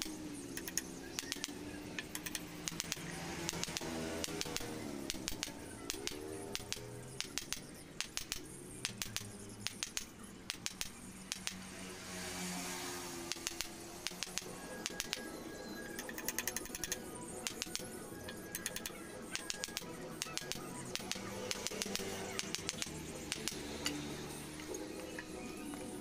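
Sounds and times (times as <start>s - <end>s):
hammer tapping steel blade: 0.0s - 11.6s, 13.3s - 15.3s, 15.9s - 25.4s
background music: 0.0s - 26.0s.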